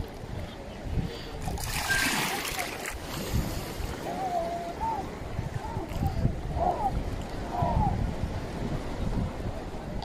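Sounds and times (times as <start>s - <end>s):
wind rumble on microphone: 0.0s - 10.0s
sea water splashing and lapping: 1.1s - 7.5s.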